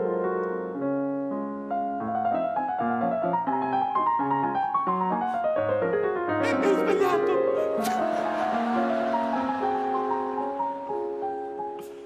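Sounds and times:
solo grand piano melody: 0.0 - 12.0.

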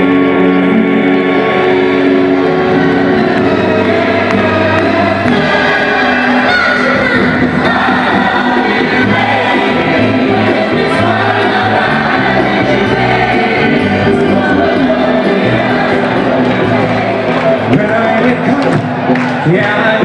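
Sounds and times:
amplified backing music: 0.0 - 20.0
man singing into microphone: 17.5 - 18.8, 19.4 - 20.0.

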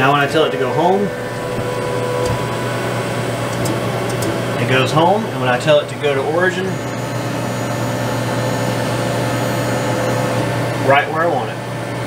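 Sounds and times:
duct fan rushing: 0.0 - 11.4
stepper motor whine: 0.0 - 12.0.

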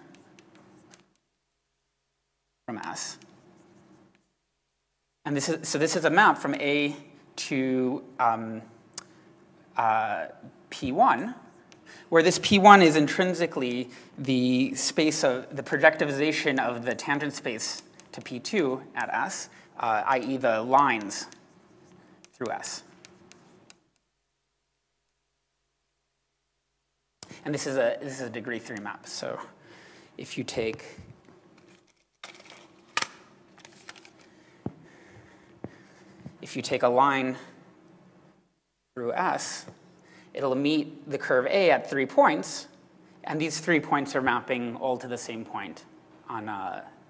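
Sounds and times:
person speaking: 2.6 - 4.2, 5.2 - 9.1, 9.7 - 23.8, 27.2 - 31.5, 33.0 - 37.6, 38.9 - 47.0.

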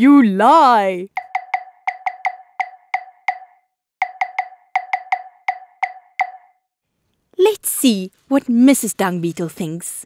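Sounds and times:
wooden percussion knocks: 1.1 - 6.6.

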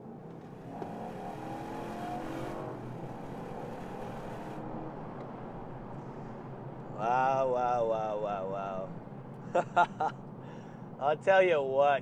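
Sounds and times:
car engine accelerating: 0.0 - 6.9
road noise: 0.0 - 12.0.

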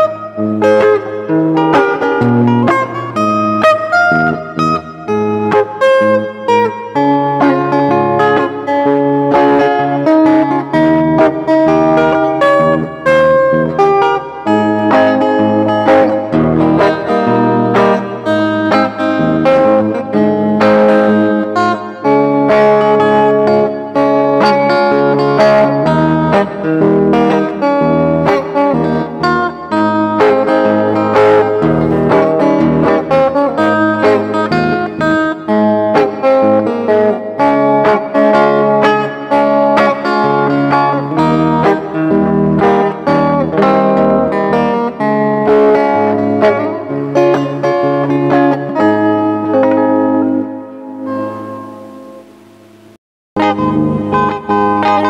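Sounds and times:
fingerstyle electric guitar: 0.0 - 55.0.

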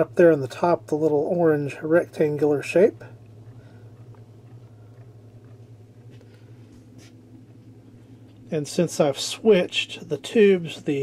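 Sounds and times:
audio amplifier low hum: 0.0 - 11.0.

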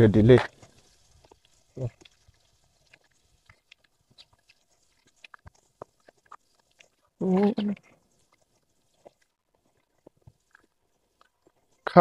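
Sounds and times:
faint clicks and ticks: 0.3 - 12.0.

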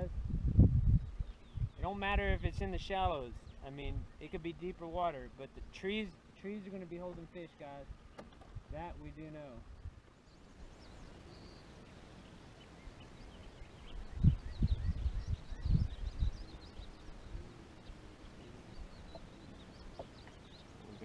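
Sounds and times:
faint bird chirps: 9.7 - 21.0.

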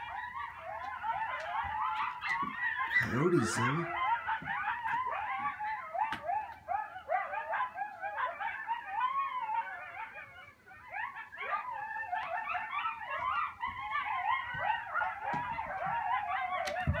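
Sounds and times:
coyotes howling: 0.0 - 17.0.

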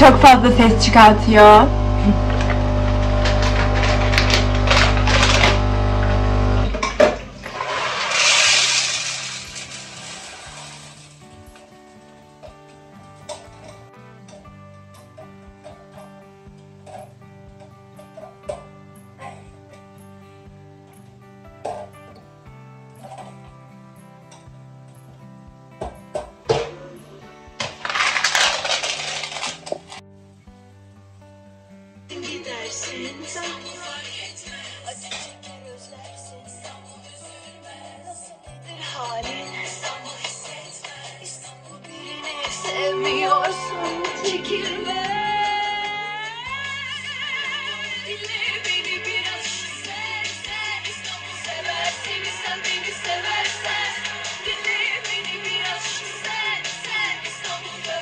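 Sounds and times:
background music: 0.0 - 2.2, 5.8 - 58.0
coffee grinder humming: 0.0 - 11.1, 27.6 - 30.0
espresso machine hissing: 0.6 - 9.2.

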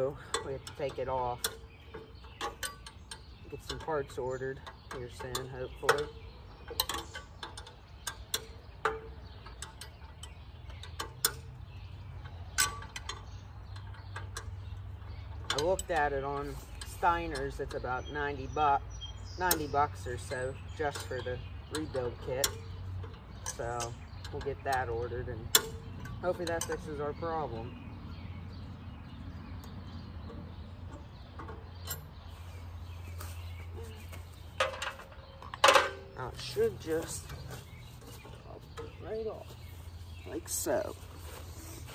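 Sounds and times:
metal knocks and clinks: 33.7 - 39.0
sharp metal clanks: 33.7 - 39.2.

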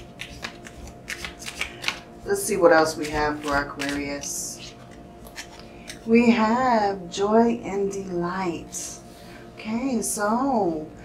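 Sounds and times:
cards being shuffled: 0.0 - 2.1, 2.8 - 5.6.

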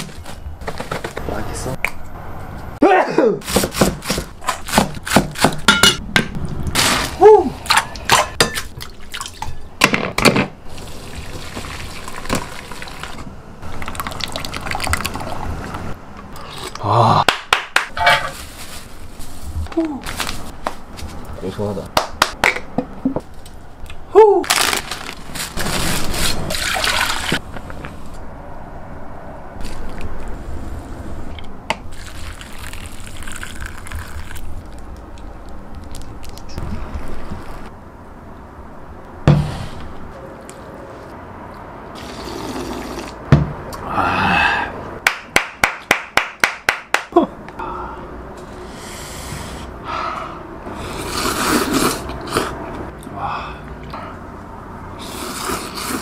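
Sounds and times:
liquid pouring and splashing: 10.7 - 15.8, 26.5 - 27.4, 31.9 - 34.8
broth pouring into bowl: 31.9 - 34.4.

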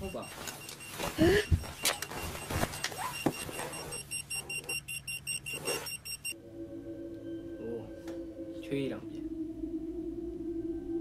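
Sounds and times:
rapid high electronic beeps: 0.0 - 6.4
low steady drone: 6.4 - 11.0.

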